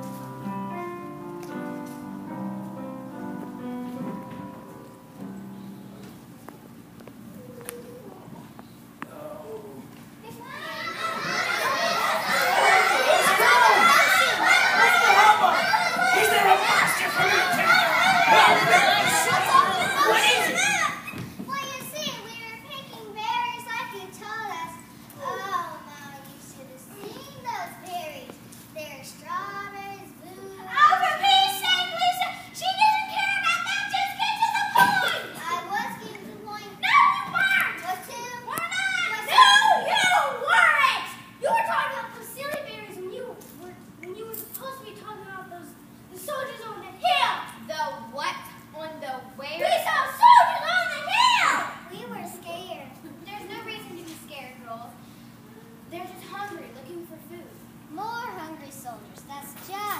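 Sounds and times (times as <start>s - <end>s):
children talking: 7.1s - 59.9s.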